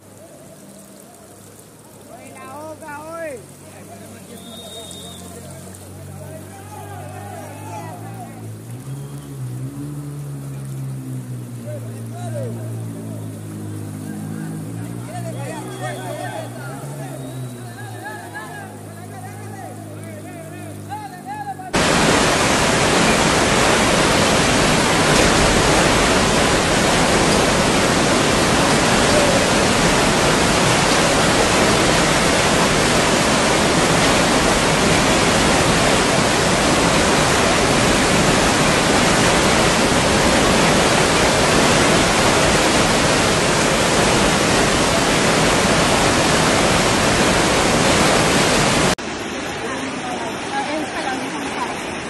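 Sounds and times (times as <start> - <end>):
floodwater rushing: 0.0 - 52.0.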